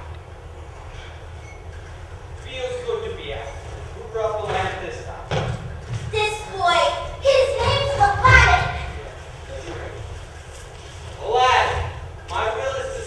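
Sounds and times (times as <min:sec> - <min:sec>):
actors' voices in a hall: 0:00.0 - 0:13.0
low room hum: 0:00.0 - 0:13.0.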